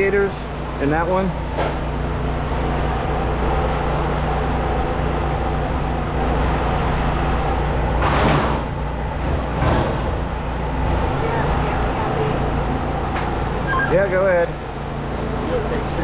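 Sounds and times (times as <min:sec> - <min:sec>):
low mechanical engine drone: 0:00.0 - 0:16.0.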